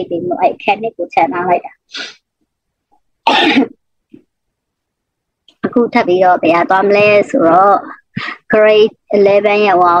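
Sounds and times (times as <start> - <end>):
person clearing throat: 3.2 - 3.8.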